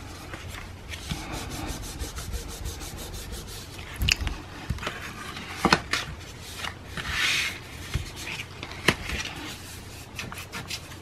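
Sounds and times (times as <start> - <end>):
hands rubbing on paper: 0.0 - 5.5, 6.3 - 11.0.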